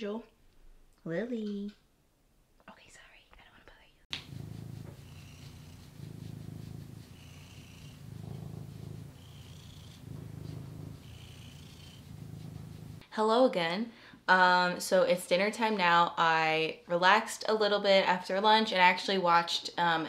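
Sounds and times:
cat purring: 0:04.1 - 0:13.0.

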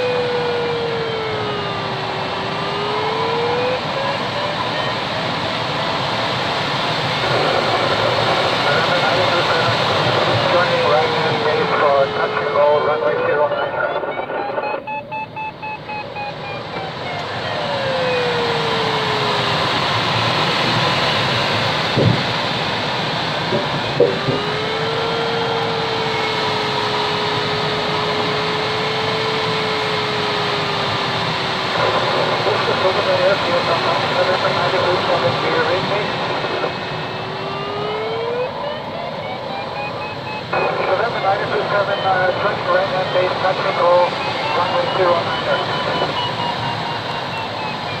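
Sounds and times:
rushing airflow over glider cockpit: 0:15.9 - 0:48.0
steady wind whistle: 0:43.2 - 0:48.0.

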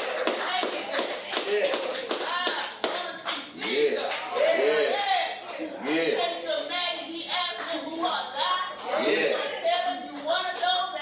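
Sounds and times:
hands clapping a beat: 0:00.0 - 0:11.0
singing: 0:00.0 - 0:11.0.

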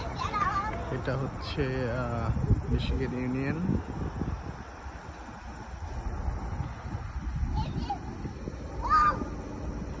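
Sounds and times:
low outdoor rumble: 0:00.0 - 0:10.0
child's high-pitched call: 0:07.4 - 0:09.4.

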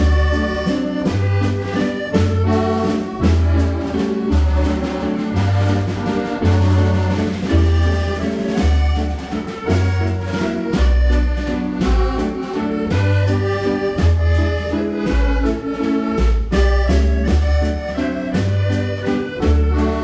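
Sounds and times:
accordion playing a waltz: 0:00.0 - 0:20.0
deep bass note: 0:00.0 - 0:20.0.

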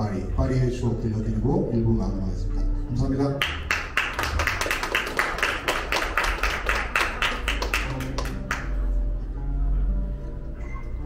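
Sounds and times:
rhythmic hand clapping: 0:03.4 - 0:08.9.

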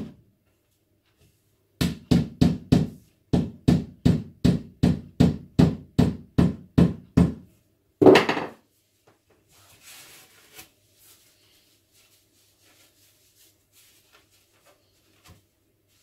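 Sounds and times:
mallet knocking on wood: 0:08.0 - 0:08.6.

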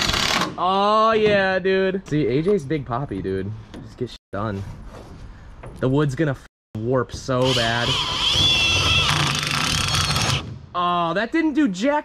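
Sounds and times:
cordless drill driving screw: 0:07.4 - 0:10.4.

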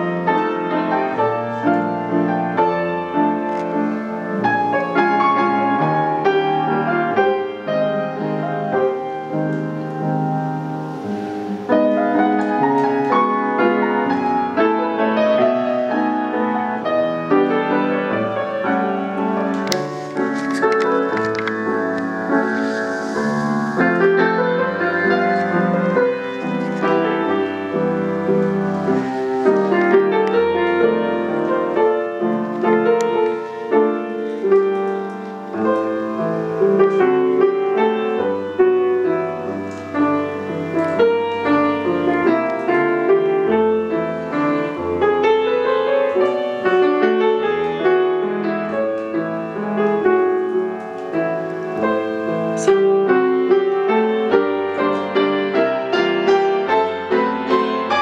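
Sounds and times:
solo piano waltz: 0:00.0 - 0:58.0.

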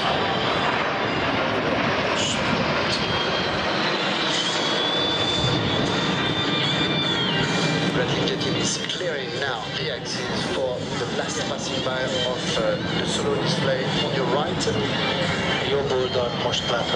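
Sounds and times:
high steady whine: 0:00.0 - 0:16.9
jet engines rushing past: 0:00.0 - 0:16.9.

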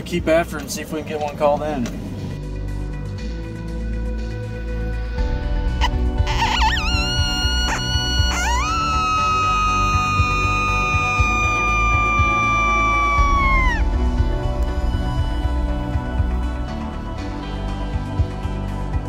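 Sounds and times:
coyote howl predator call: 0:05.8 - 0:14.1.

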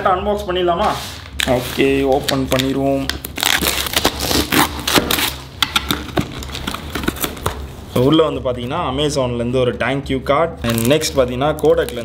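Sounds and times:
cardboard seal tearing: 0:01.4 - 0:07.6, 0:10.6 - 0:12.0.

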